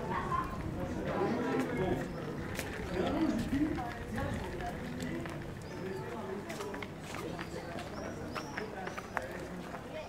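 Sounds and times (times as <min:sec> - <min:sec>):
footsteps on stone paving: 0:00.0 - 0:10.0
people talking: 0:00.0 - 0:10.0.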